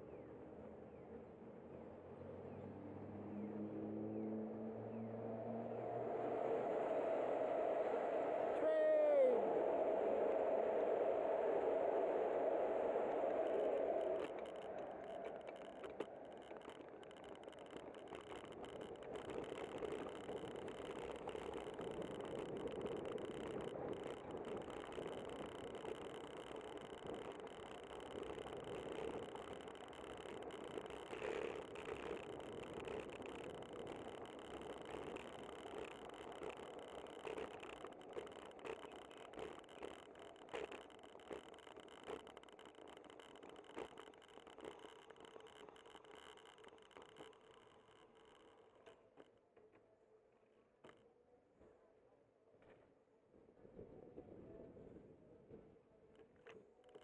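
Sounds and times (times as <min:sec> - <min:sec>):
traffic noise: 0:01.7 - 0:10.5
train on elevated track: 0:04.8 - 0:15.2.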